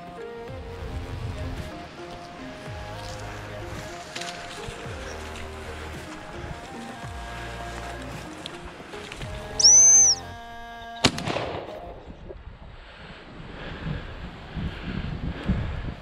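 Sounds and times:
background music: 0.0 - 12.2
loud high whistle note: 9.6 - 10.2
shotgun shot: 11.0 - 11.9.

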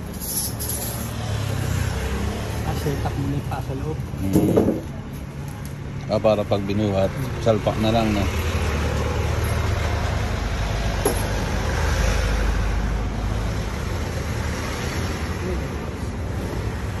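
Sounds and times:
street traffic: 0.0 - 17.0
vehicle engine rumble: 0.0 - 17.0.

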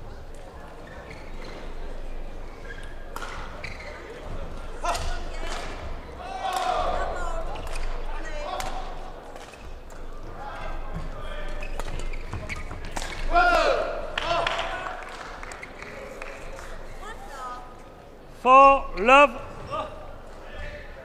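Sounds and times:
reverberant hall murmur: 0.0 - 21.0
shoes squeaking on court: 0.2 - 6.2, 9.3 - 13.3.

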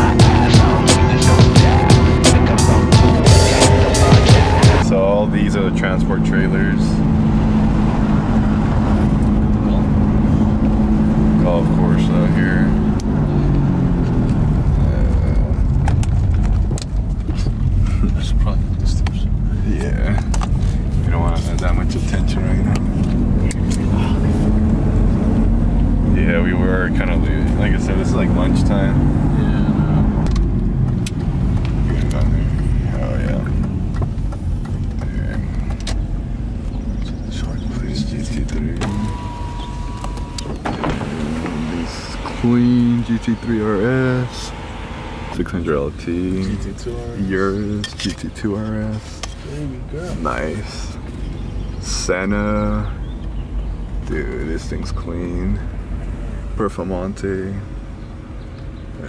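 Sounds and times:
car road noise: 0.0 - 59.0.

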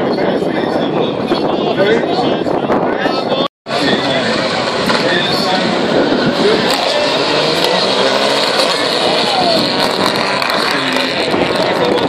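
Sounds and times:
spectators talking: 0.0 - 12.0
rally car engine passing: 3.8 - 12.0.

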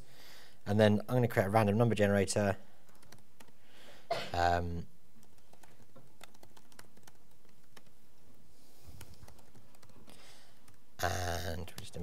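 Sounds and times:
computer keyboard typing: 2.8 - 3.6, 5.2 - 8.4, 9.0 - 10.9, 11.5 - 12.0.

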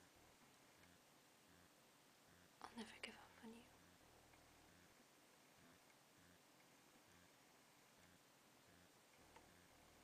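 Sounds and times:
person whispering: 2.3 - 3.8.

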